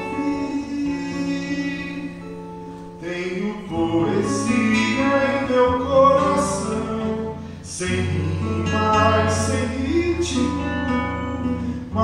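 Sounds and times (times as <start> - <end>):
acoustic guitars: 0.0 - 12.0
man singing: 0.0 - 12.0.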